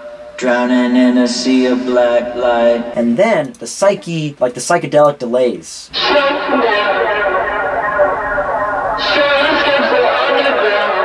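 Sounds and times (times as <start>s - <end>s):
singing voice with delay echoes: 0.0s - 3.3s, 5.9s - 11.0s.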